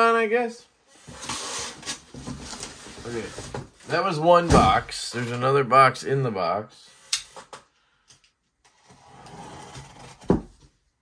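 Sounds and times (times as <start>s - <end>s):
cardboard scraping: 8.7s - 10.6s.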